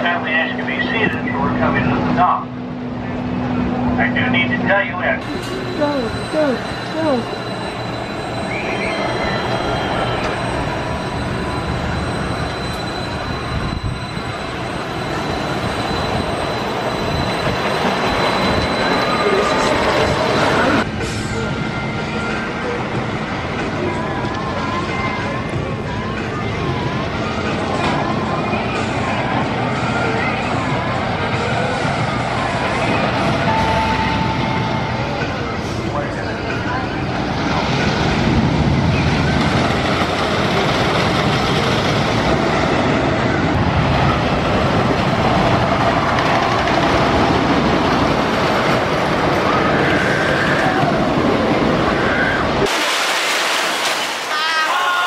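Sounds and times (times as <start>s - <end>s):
crowd voices: 5.1s - 12.1s
wooden roller coaster rumbling: 35.2s - 52.8s.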